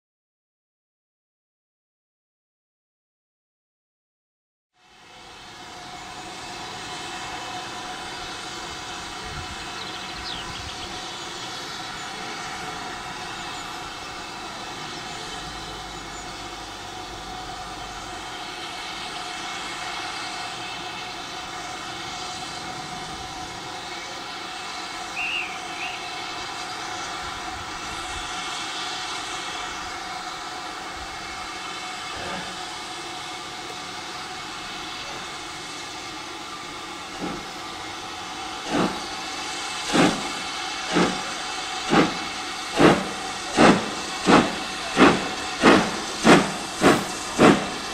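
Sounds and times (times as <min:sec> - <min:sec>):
steam hissing from locomotive: 0:04.8 - 0:47.9.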